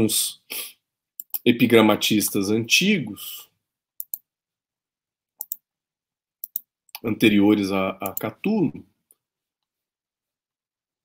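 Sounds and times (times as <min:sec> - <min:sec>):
computer mouse clicking: 0:01.2 - 0:01.4, 0:04.0 - 0:04.2, 0:05.4 - 0:05.6, 0:06.4 - 0:06.7.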